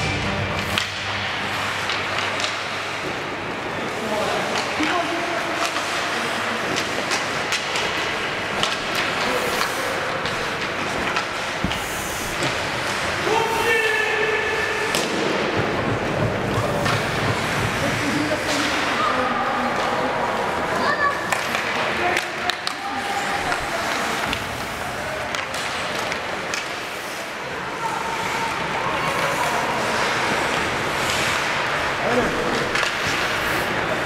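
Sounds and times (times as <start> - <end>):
skates on ice: 0.0 - 34.0.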